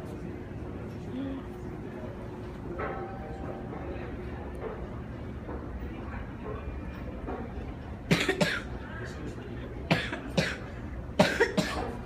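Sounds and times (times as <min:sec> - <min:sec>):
person coughing: 0:08.1 - 0:08.7, 0:09.9 - 0:12.0.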